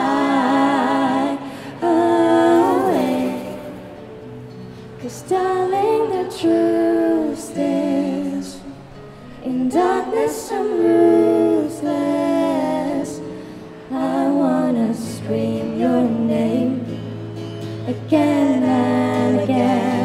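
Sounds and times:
woman singing: 0.0s - 4.0s, 5.0s - 20.0s
strummed acoustic guitar: 0.0s - 20.0s.

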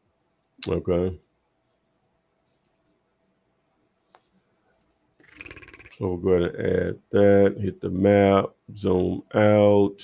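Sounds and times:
faint computer mouse clicks: 2.6s - 2.9s, 3.6s - 5.1s.

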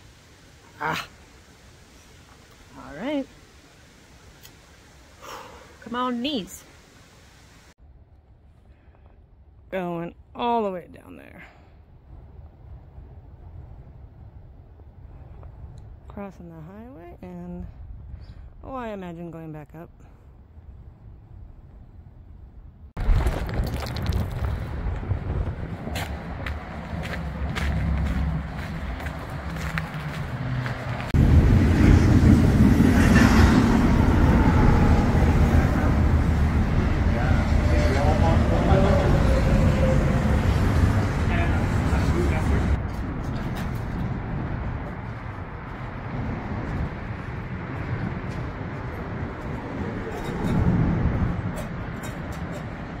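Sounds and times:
freeway traffic noise: 10.9s - 18.9s, 23.8s - 53.0s.

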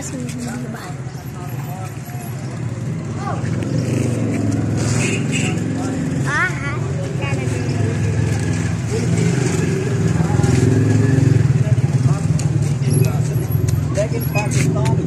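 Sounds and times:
scattered voices: 0.0s - 15.0s.

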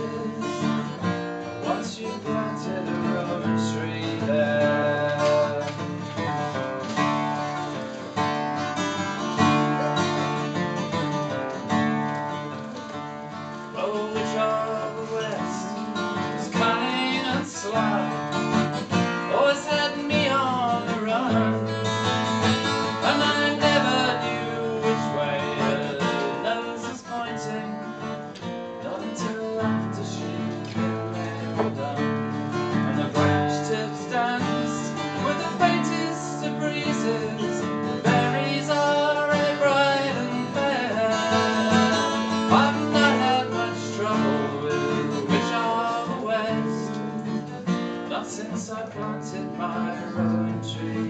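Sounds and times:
acoustic guitar chords: 0.0s - 51.0s.

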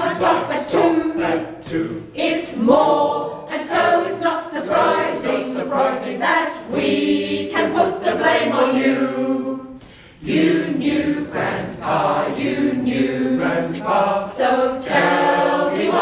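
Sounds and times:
choir singing a cappella: 0.0s - 16.0s.

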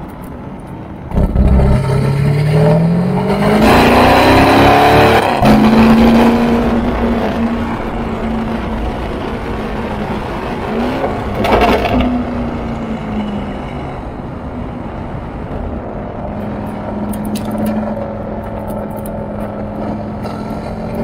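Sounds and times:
car engine accelerating: 1.0s - 14.4s.

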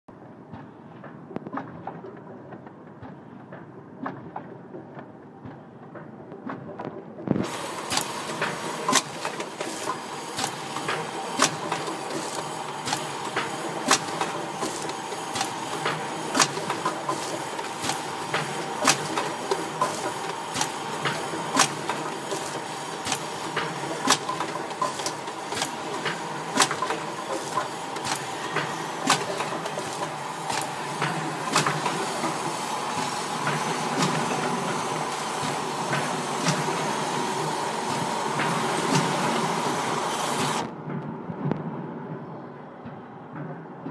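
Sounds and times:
machine mechanism clacks: 0.2s - 43.9s
packing machine hum: 0.5s - 41.0s.

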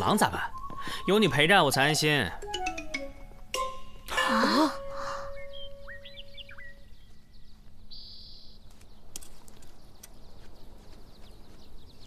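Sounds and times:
chime-like background music: 2.4s - 6.4s.

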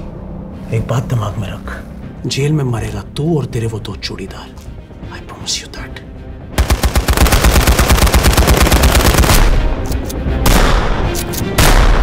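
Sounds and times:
rapid gunfire burst: 6.6s - 9.6s.

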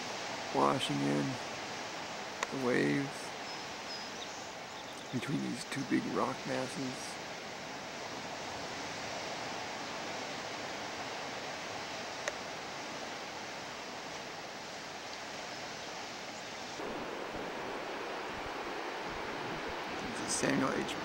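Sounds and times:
ocean surf: 0.0s - 21.0s
wind: 0.0s - 21.0s.

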